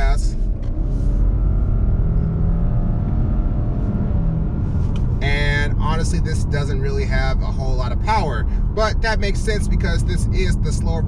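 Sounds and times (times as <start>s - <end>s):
car engine accelerating: 0.0s - 11.0s
low road rumble: 0.0s - 11.0s.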